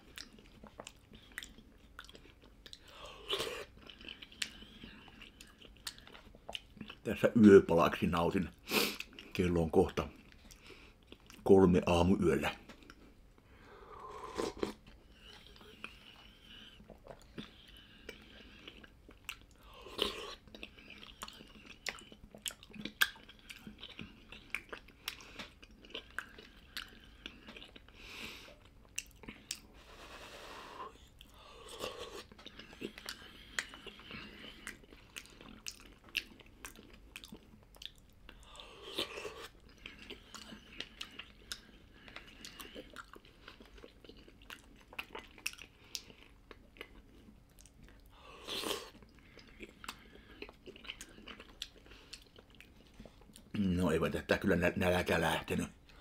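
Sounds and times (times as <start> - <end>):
person chewing with wet mouth clicks: 0.0 - 7.0, 14.2 - 29.7, 30.9 - 53.5.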